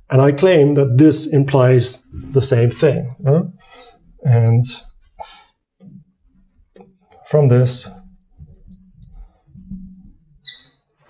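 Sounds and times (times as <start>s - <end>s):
marker pen squeaking on glass: 3.6s - 5.4s, 7.9s - 10.9s.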